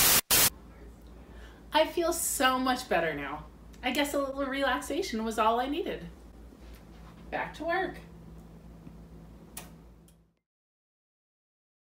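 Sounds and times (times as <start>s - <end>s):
low steady hum: 0.5s - 10.4s.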